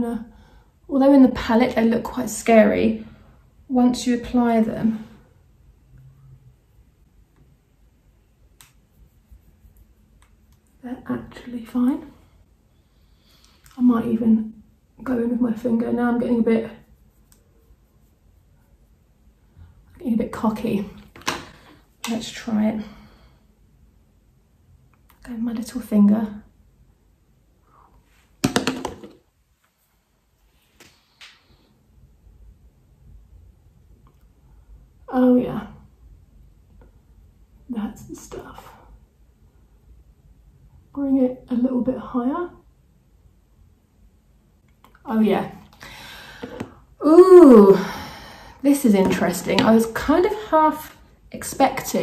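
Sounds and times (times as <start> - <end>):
faint sharp click: 8.6 - 8.8.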